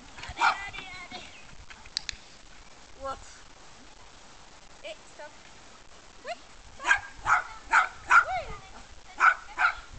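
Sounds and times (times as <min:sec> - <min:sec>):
dog barking: 0:00.4 - 0:00.6, 0:06.8 - 0:08.3, 0:09.2 - 0:09.9.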